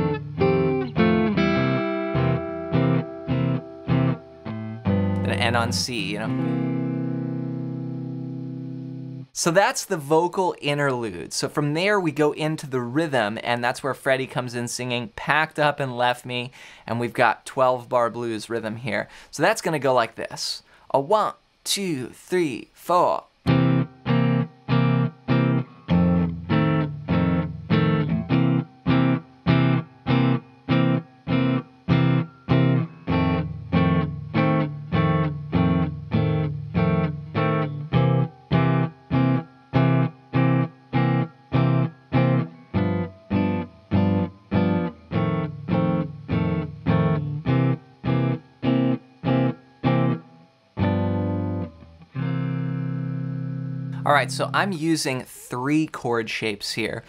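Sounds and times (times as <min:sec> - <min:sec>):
electric guitar blues chords: 0:00.0 - 0:09.4, 0:23.5 - 0:54.7.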